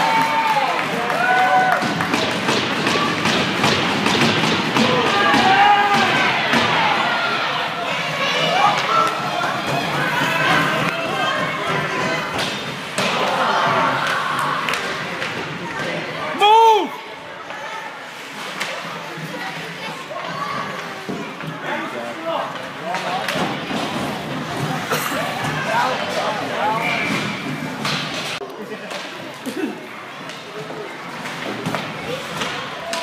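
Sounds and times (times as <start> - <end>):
hockey sticks and puck knocking: 1.8 - 6.8
spectators shouting: 4.6 - 15.0.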